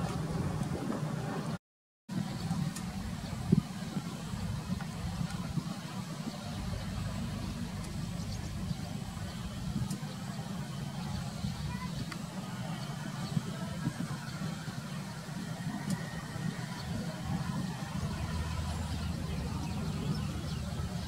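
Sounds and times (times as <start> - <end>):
faint indistinct voices: 0.0 - 21.0
low outdoor rumble: 0.0 - 21.0.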